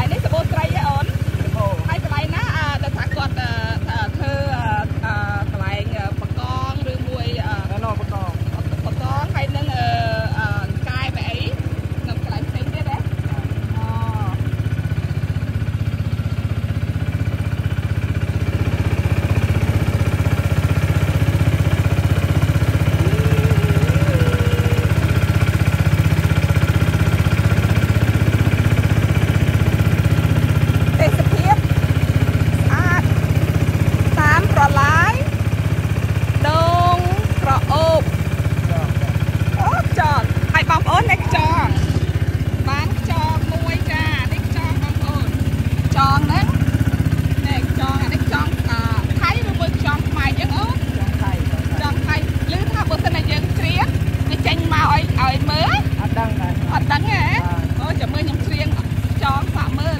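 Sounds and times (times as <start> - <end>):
people talking: 0.0 - 14.5, 23.0 - 25.2, 30.8 - 31.7, 32.5 - 33.2, 34.0 - 35.3, 36.4 - 38.1, 38.7 - 46.6, 47.4 - 59.9
motor boat engine drone: 0.0 - 59.9.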